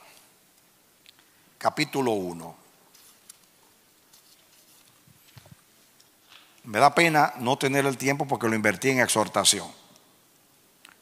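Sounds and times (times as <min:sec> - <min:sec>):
book pages turning: 0:02.9 - 0:05.6.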